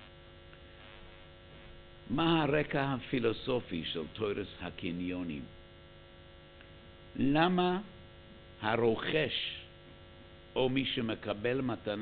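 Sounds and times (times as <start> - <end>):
electrical mains hum: 0.0 - 12.0
speech: 2.1 - 5.6, 7.2 - 8.0, 8.6 - 9.7, 10.6 - 12.0.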